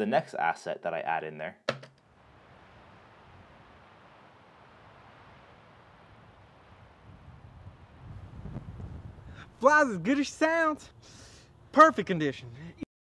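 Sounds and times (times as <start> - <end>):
soft hiss of air: 2.0 - 12.8
low rumble: 4.9 - 9.6.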